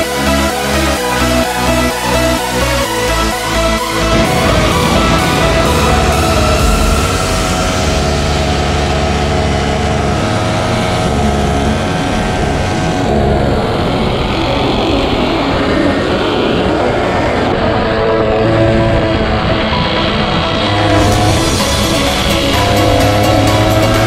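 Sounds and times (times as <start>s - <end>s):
music: 0.0s - 24.0s.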